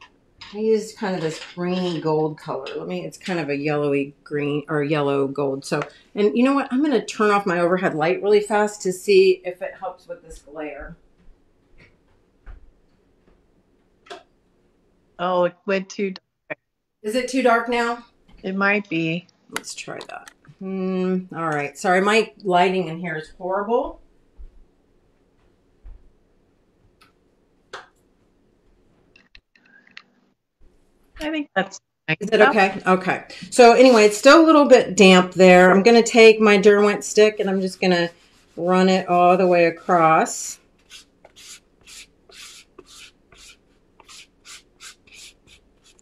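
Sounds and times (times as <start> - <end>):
stick scratching on foam stamp: 40.8 - 46.0.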